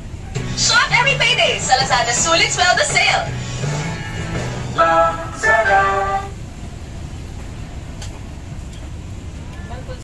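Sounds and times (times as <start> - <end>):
low rumbling background noise: 0.0 - 10.0
advert jingle: 0.6 - 6.5.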